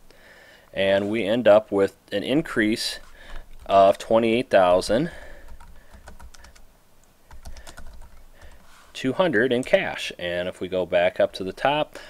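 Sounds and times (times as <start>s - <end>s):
keyboard typing clicks: 7.3s - 8.6s.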